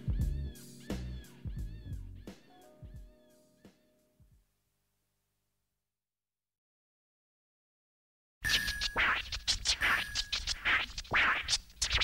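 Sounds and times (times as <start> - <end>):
record scratches: 8.5 - 12.0.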